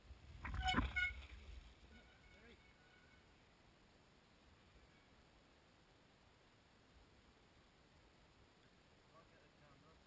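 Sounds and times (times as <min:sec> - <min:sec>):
brief high-pitched squeal: 0:00.5 - 0:01.3.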